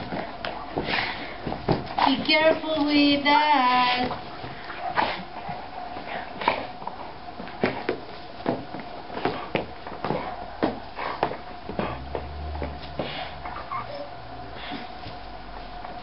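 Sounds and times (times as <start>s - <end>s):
small dog sounds: 13.1s - 14.8s.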